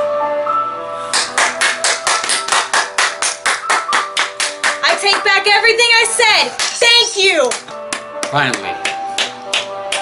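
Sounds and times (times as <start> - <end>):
faint background music: 0.0 - 10.0
hands clapping fast: 1.1 - 5.5, 6.5 - 6.8, 7.4 - 10.0.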